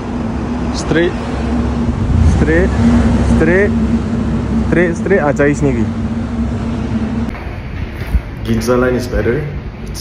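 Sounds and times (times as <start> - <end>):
steady low hum: 0.0 - 10.0
street background noise: 0.0 - 10.0.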